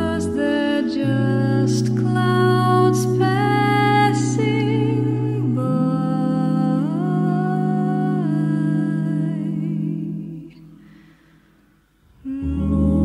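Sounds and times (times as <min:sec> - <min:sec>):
vocal ensemble humming chords: 0:00.0 - 0:11.1, 0:12.0 - 0:13.0.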